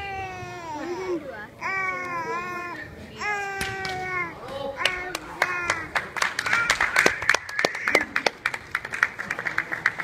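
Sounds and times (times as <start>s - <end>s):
hands clapping: 3.6s - 4.1s, 4.8s - 10.0s.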